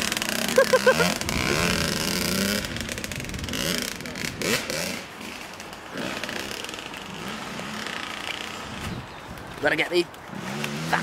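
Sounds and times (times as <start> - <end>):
dirt bike engine revving: 0.0 - 9.0, 10.3 - 11.0.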